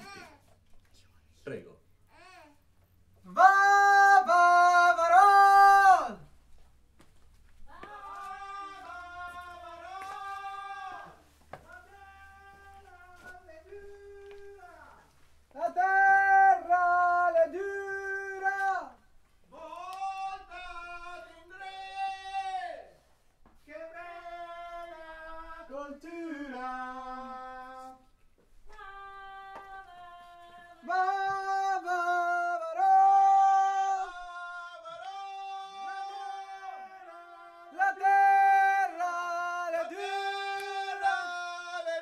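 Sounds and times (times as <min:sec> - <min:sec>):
person singing unaccompanied: 0:03.2 - 0:06.2, 0:07.6 - 0:22.9, 0:23.6 - 0:42.0.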